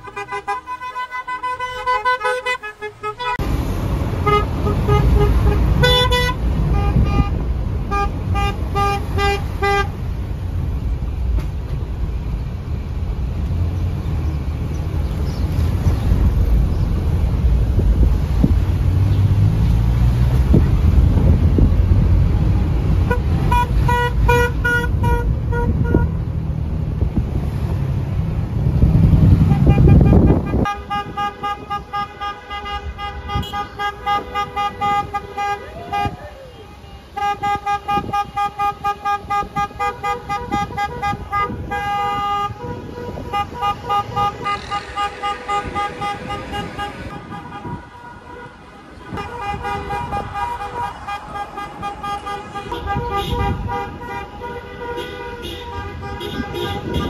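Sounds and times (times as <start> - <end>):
car horns honking: 0.0 - 10.3, 22.8 - 26.2, 29.1 - 57.0
moving car rumble: 0.0 - 57.0
wind: 0.0 - 57.0.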